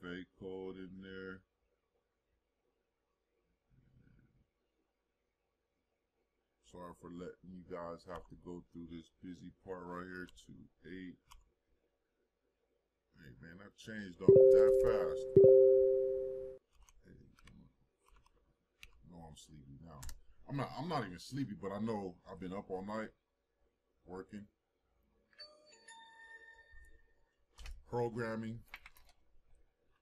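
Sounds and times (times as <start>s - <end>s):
person speaking: 14.2s - 16.5s
faint bell-like chime: 14.3s - 16.6s.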